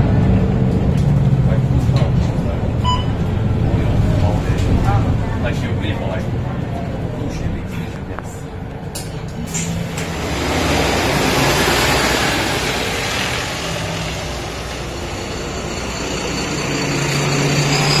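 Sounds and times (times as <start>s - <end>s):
bus engine pulling away: 0.0s - 18.0s
road noise: 0.0s - 18.0s
second bus engine revving: 9.0s - 18.0s.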